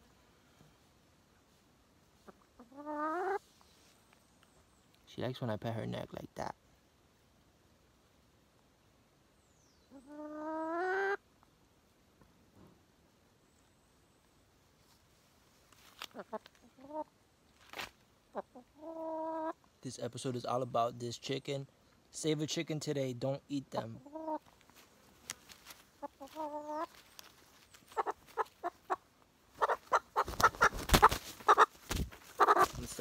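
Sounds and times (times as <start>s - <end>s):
hen calling: 2.2s - 3.4s, 9.8s - 11.2s, 18.3s - 19.6s, 23.7s - 24.5s, 26.0s - 27.0s, 27.8s - 31.7s, 32.3s - 33.0s.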